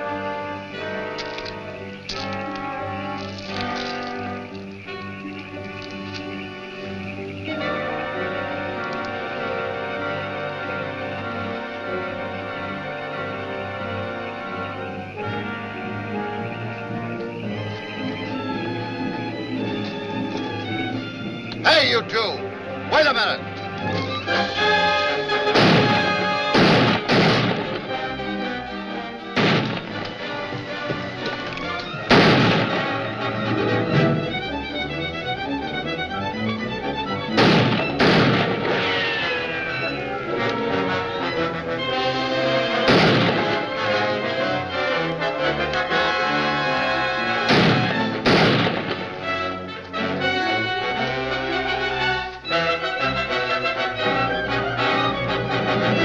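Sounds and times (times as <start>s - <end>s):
dramatic orchestral music: 0.0s - 56.0s.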